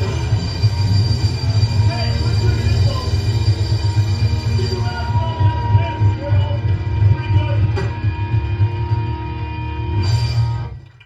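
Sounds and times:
heavy metal band playing: 0:00.0 - 0:10.8.

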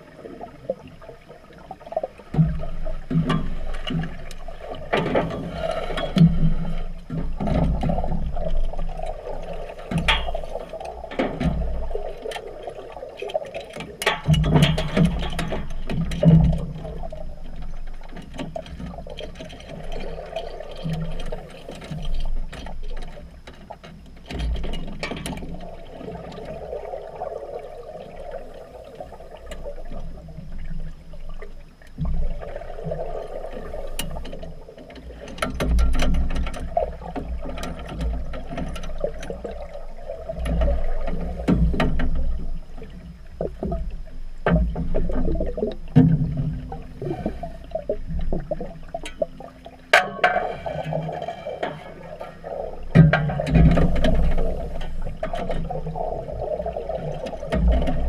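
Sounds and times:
underwater gurgling bubbles: 0:00.0 - 0:58.0
underwater clicks and knocks: 0:00.4 - 0:58.0.

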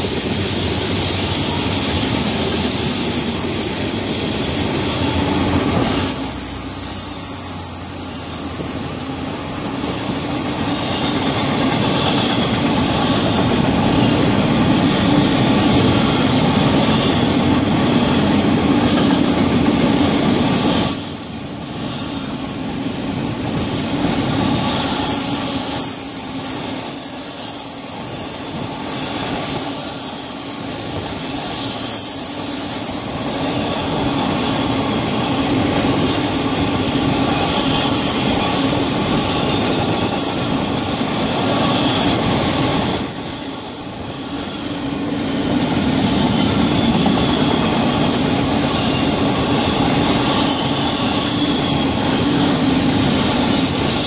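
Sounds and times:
freight train cars rolling: 0:00.0 - 0:54.0.

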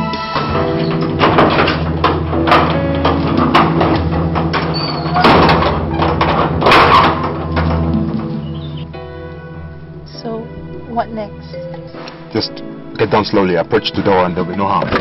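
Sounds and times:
film music with held chords: 0:00.0 - 0:15.0
sharp knocks and thuds: 0:00.4 - 0:08.8.

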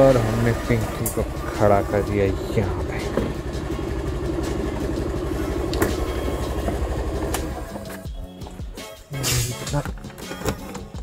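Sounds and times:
scooter engine idling: 0:00.0 - 0:08.3.

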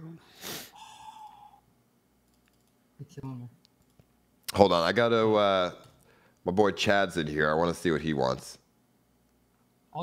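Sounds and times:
faint steady tone: 0:00.0 - 0:02.7.

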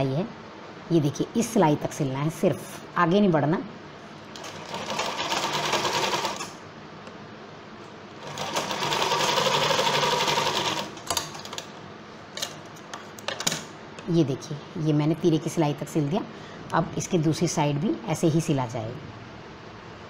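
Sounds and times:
sewing machine stitching: 0:04.4 - 0:06.6, 0:08.2 - 0:11.6.

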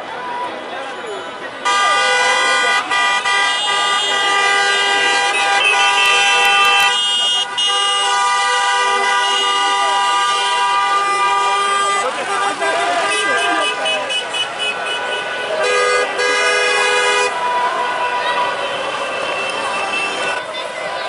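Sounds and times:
crowd shouting and chanting: 0:00.0 - 0:21.0
car horns blasting: 0:01.6 - 0:20.4.

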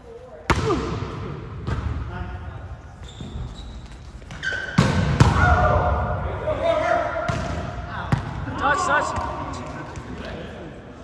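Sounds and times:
sneakers squeaking on gym floor: 0:02.9 - 0:05.3
players' voices: 0:05.0 - 0:11.0.

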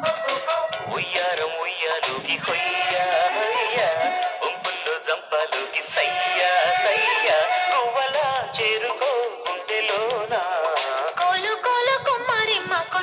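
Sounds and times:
person singing ornamented melody: 0:00.0 - 0:11.8
percussion and instruments: 0:00.0 - 0:13.0.

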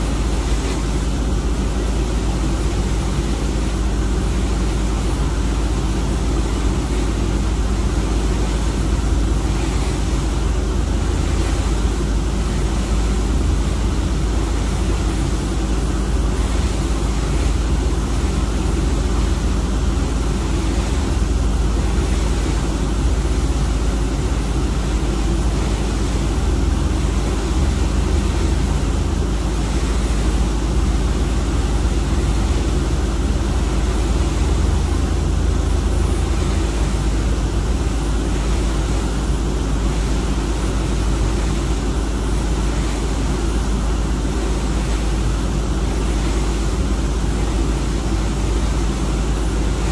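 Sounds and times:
churning water: 0:00.0 - 0:49.9
ship engine drone: 0:00.0 - 0:49.9
wind: 0:00.0 - 0:49.9.

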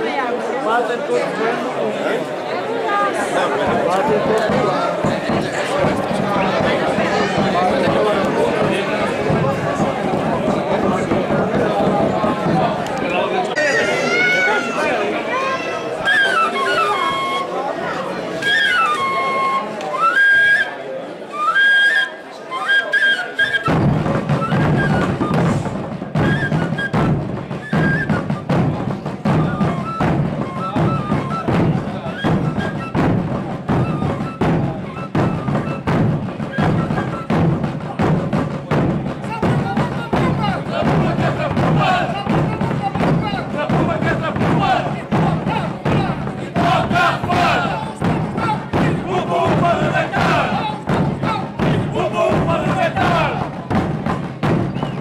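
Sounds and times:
bass drums beating: 0:03.6 - 0:13.2, 0:23.7 - 0:55.0
wooden fife tune: 0:16.0 - 0:17.6, 0:18.4 - 0:20.7, 0:21.3 - 0:38.5.

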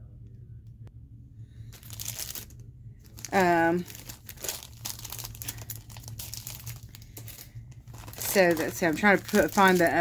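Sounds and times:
plastic packaging crinkling: 0:01.7 - 0:10.0.

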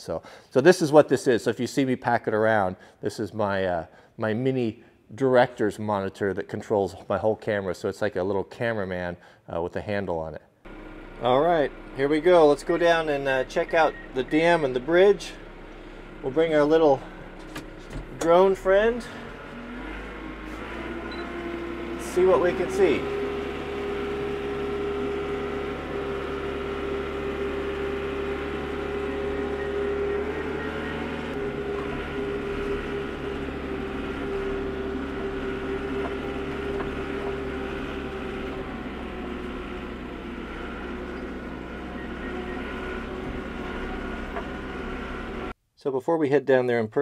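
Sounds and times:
strong held tone: 0:10.7 - 0:45.2
mechanical motor hum: 0:10.7 - 0:45.6.

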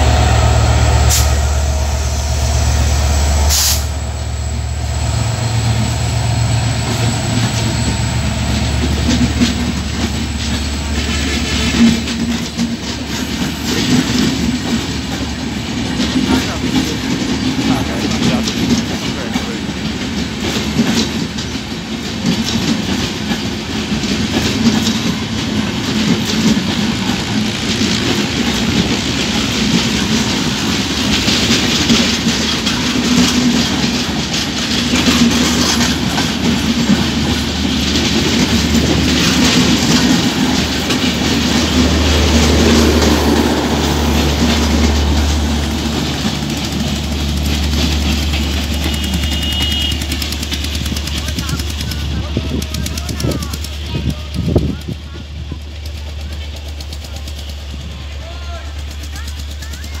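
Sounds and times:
train wheels clattering over rails: 0:00.0 - 1:00.0.

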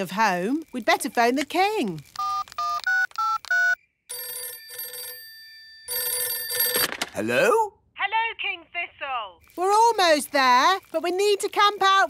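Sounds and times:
phone keypad beeps: 0:02.2 - 0:05.2
telephone bell ringing: 0:02.2 - 0:07.3.

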